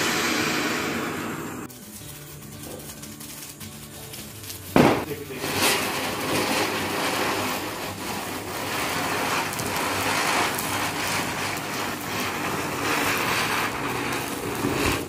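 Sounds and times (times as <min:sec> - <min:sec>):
firework fountain hissing: 0:00.0 - 0:15.0.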